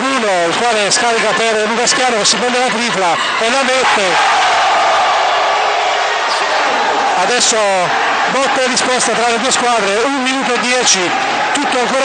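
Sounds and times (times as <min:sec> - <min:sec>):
crowd shouting: 0:00.1 - 0:12.0.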